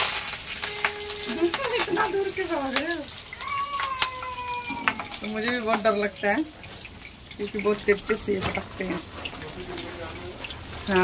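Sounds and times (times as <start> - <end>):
food spitting in hot oil: 0.0 - 11.0.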